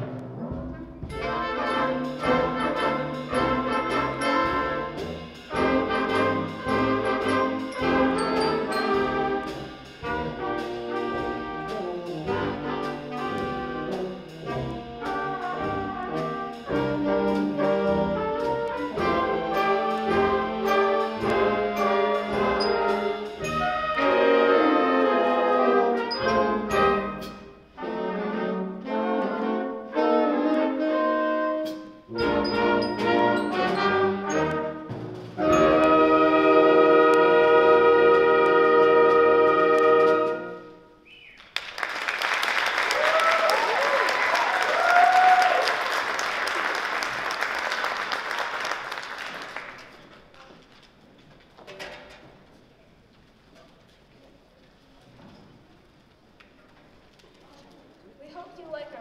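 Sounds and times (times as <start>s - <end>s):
concert band playing swing jazz: 0.0s - 50.1s
audience applause: 41.4s - 50.3s
audience whoops: 42.5s - 46.7s.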